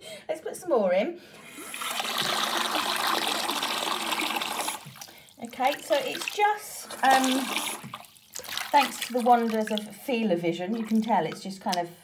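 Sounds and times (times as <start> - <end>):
bath tap running into water: 1.4 - 11.8.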